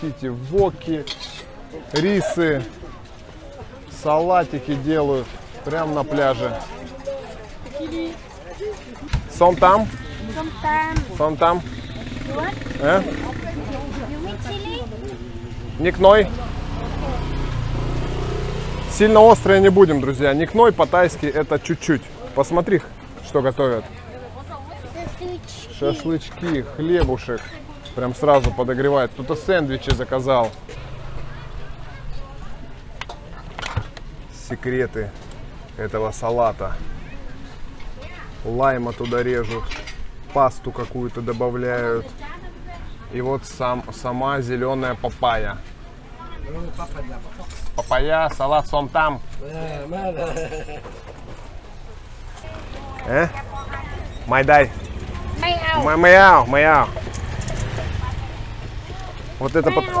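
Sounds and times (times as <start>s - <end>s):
street food stall bustle: 0.0s - 60.0s
conversational speech: 57.8s - 60.0s.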